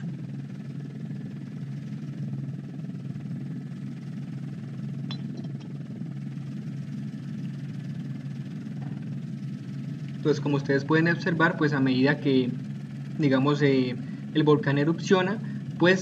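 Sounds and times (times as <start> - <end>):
aircraft engine drone: 0.0 - 16.0
low hum: 0.0 - 16.0.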